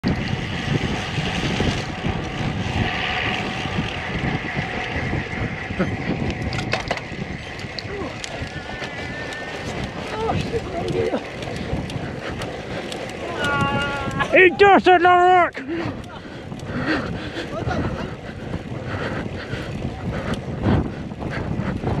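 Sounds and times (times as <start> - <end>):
bike tyres rolling on tarmac: 0.0 - 22.0
wind buffeting microphone: 0.0 - 22.0
heavy breathing gasps: 15.7 - 21.9.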